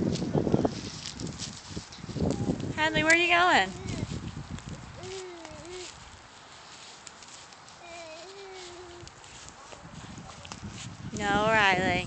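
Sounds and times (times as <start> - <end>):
footsteps crunching on dry lawn: 0.0 - 12.0.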